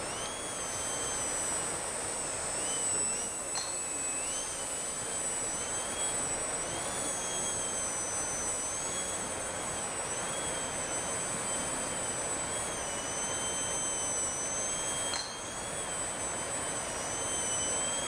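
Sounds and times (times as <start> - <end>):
rc plane motor whining: 0.0 - 18.0.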